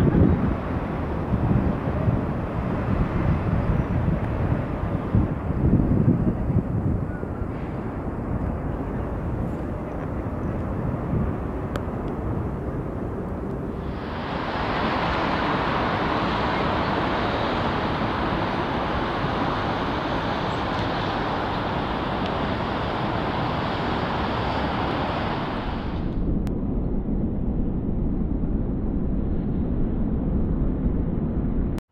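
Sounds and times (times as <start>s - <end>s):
steady outdoor rushing noise: 0.0s - 31.8s.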